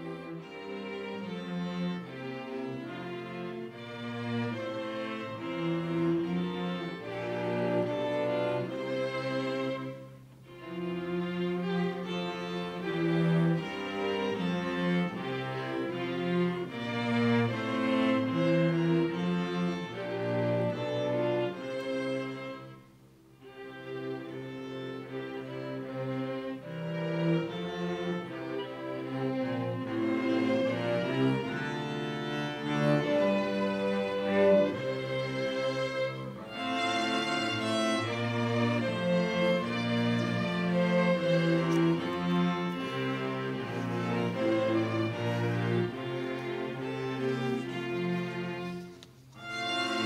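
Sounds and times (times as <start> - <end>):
string ensemble playing anthem: 0.0 - 50.0.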